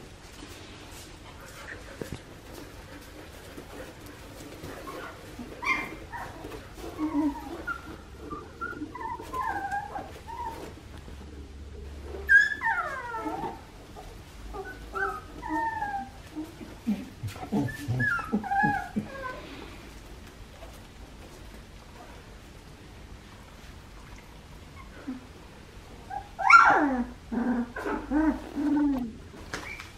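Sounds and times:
puppies whimpering and squeaking: 1.6s - 10.9s, 12.0s - 19.8s, 26.0s - 29.9s
puppy crying: 4.9s - 10.7s, 12.2s - 13.7s, 14.5s - 19.6s, 26.1s - 29.8s.

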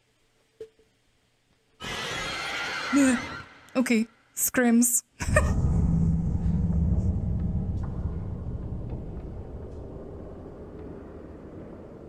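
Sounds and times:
deep low rumble: 5.2s - 12.0s
soundtrack hit: 5.4s - 12.0s.

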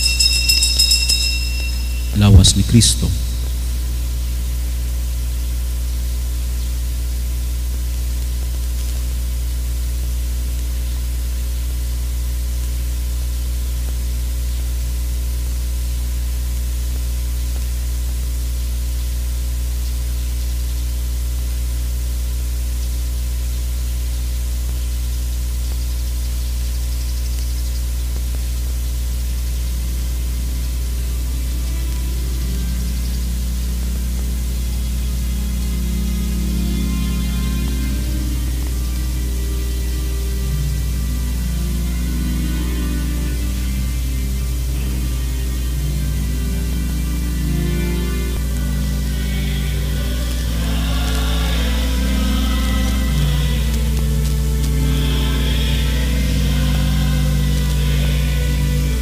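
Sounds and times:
faint music: 0.0s - 6.4s, 29.6s - 59.0s
electrical hum with hiss: 0.0s - 59.0s.

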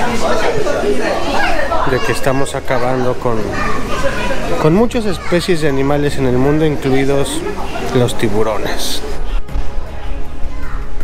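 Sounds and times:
people chattering: 0.0s - 11.0s
man's voice: 4.6s - 9.2s.

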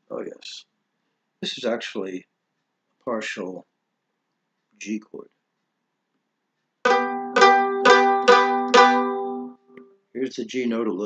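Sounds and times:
mandolin double stop picked: 6.9s - 9.6s.

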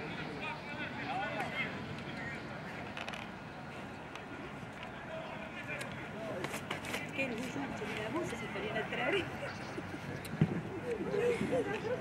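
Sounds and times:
low indistinct voices: 0.0s - 12.0s.

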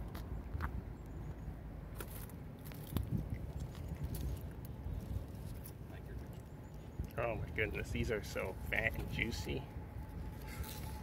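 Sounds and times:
low steady rumble: 0.0s - 11.0s
leaves rustling: 10.2s - 11.0s.

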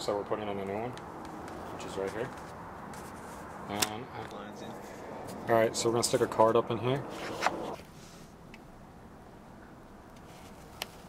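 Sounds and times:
plastic card scraping plastic: 7.1s - 8.2s.

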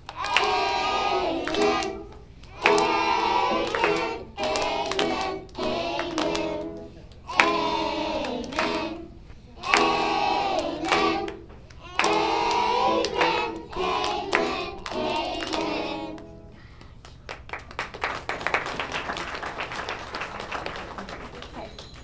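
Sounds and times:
children and adults singing carol: 0.1s - 16.5s
applause: 16.8s - 22.0s.

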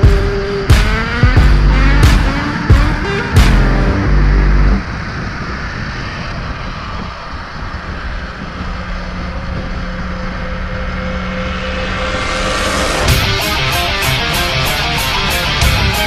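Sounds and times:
music soundtrack: 0.0s - 5.4s, 9.0s - 16.0s
rolling road noise: 0.0s - 16.0s
wind rush: 0.0s - 16.0s.

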